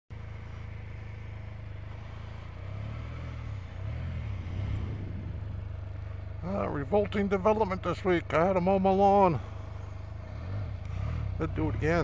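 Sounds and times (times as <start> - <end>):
motorcycle engine idling and revving: 0.1 - 12.0.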